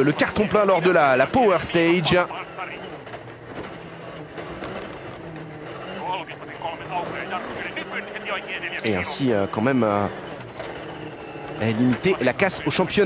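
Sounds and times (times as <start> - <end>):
rally car engine at speed: 0.0 - 13.0
road noise: 0.0 - 13.0.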